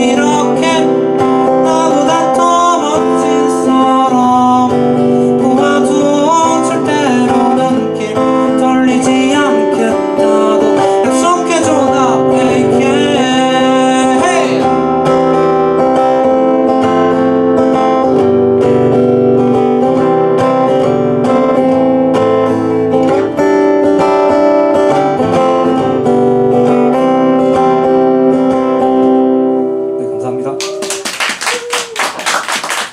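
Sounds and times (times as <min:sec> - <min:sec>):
person singing: 0:00.0 - 0:14.9
acoustic guitar strumming: 0:00.0 - 0:30.6
people clapping: 0:30.5 - 0:32.9.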